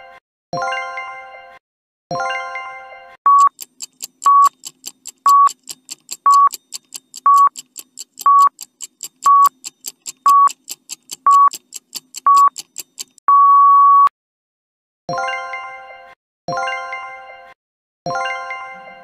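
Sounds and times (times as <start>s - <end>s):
short beeps: 3.3s - 3.6s, 4.2s - 4.6s, 5.3s - 5.5s, 6.3s - 6.5s, 7.3s - 7.5s, 8.3s - 8.5s, 9.2s - 9.6s, 10.3s - 10.5s, 11.3s - 11.5s, 12.3s - 12.6s, 13.3s - 14.1s
clock ticking: 3.3s - 13.2s.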